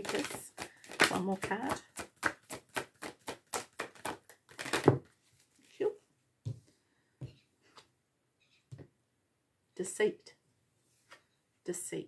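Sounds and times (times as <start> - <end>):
cards being shuffled: 0.0 - 5.7.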